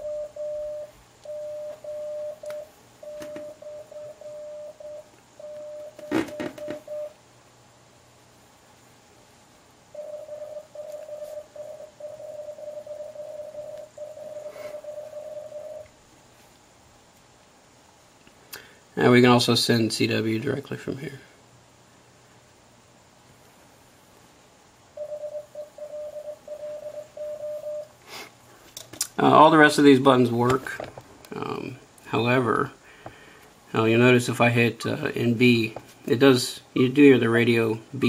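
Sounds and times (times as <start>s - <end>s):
morse code tone: 0.0s - 7.2s, 9.9s - 15.9s, 25.0s - 27.9s.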